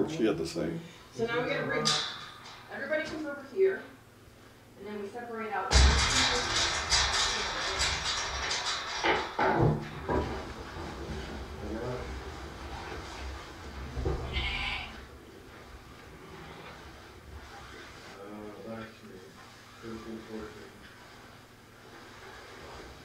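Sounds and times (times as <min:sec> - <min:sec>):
shuffling and knocks: 0:05.7 - 0:18.2
sheep bleating: 0:14.3 - 0:15.1.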